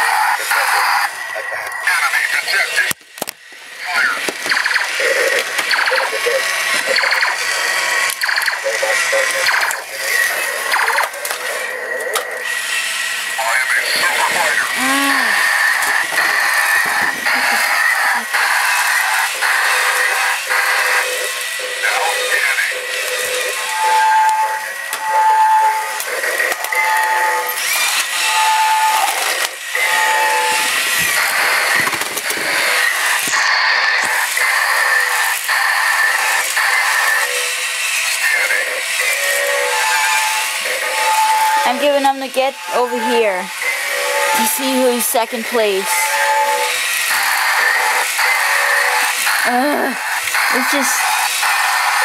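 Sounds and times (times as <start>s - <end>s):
synthesized voice: 0.0s - 2.9s, 3.8s - 12.0s, 13.4s - 18.4s, 21.7s - 24.2s, 41.6s - 43.6s, 44.2s - 46.2s, 49.4s - 51.3s
toy robot motors whirring: 0.0s - 52.0s
electronic sound effects: 3.9s - 11.2s, 13.4s - 29.2s, 38.4s - 52.0s
electronic toy music: 14.2s - 31.8s, 35.8s - 52.0s.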